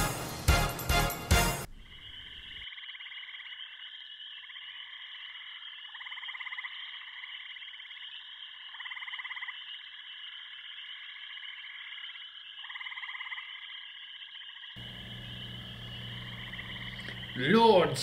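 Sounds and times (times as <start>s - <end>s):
electronic drone music: 14.8s - 18.0s.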